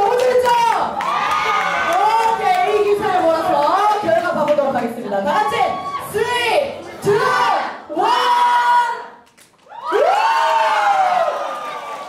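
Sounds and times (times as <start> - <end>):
crowd cheering and shouting: 0.0 - 3.1, 5.3 - 9.1, 9.7 - 12.0.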